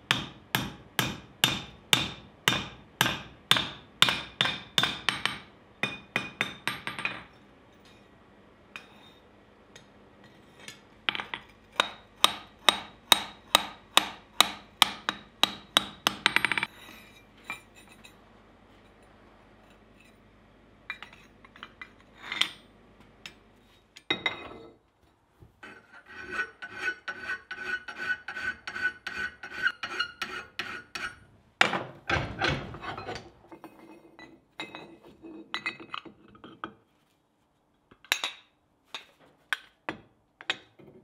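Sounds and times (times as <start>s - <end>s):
hammer striking steel on anvil: 0.0s - 7.3s, 11.8s - 16.7s.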